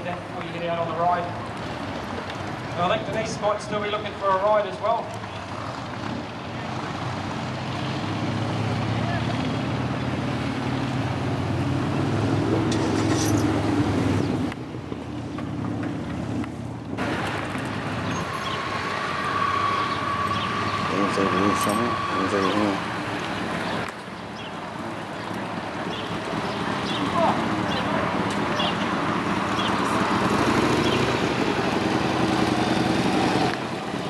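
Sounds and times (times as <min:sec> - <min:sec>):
engine running: 0:01.4 - 0:24.0, 0:24.6 - 0:34.0
voices: 0:02.3 - 0:05.4, 0:08.8 - 0:10.3, 0:18.2 - 0:31.8.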